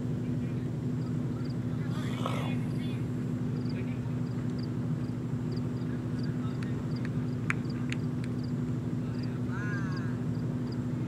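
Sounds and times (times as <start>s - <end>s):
low hum: 0.0s - 9.1s.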